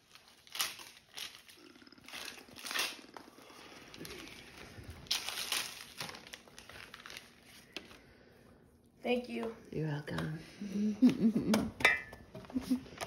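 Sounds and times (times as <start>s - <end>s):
wrapping paper tearing and crinkling: 0.0s - 8.0s.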